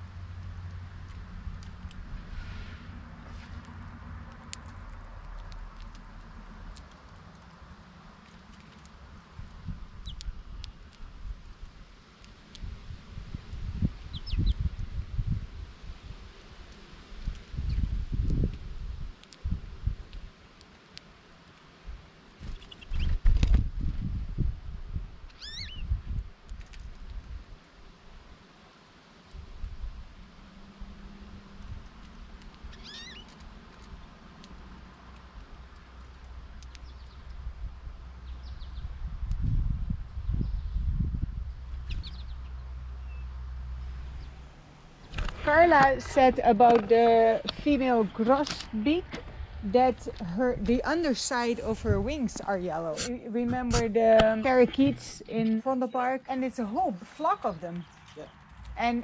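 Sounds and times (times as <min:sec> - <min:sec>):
birds chirping: 0:14.0 - 0:14.7, 0:25.3 - 0:26.0, 0:32.6 - 0:33.4, 0:41.8 - 0:43.4, 0:45.0 - 0:51.8, 0:53.5 - 0:59.0
low rumbling bumps: 0:43.8 - 0:55.6.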